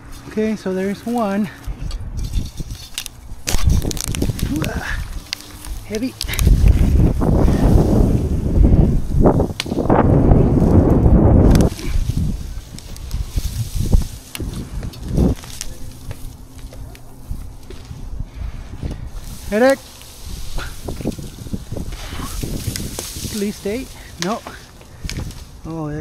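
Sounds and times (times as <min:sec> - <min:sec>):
branches clicking and knocking: 0:00.0 - 0:25.8
fir boughs rustling against microphone: 0:00.0 - 0:25.8.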